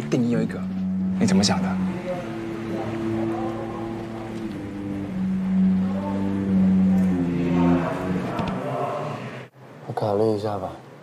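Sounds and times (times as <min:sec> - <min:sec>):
background music of low notes: 0:00.0 - 0:08.6.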